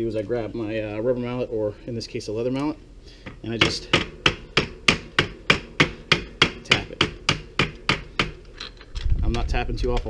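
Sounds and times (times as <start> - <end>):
mallet tapping on metal tool: 3.6 - 8.4.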